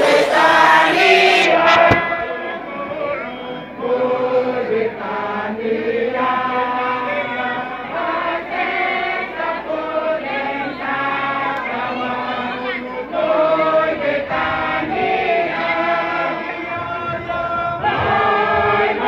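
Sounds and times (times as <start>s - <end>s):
group of voices chanting: 0.0s - 19.0s.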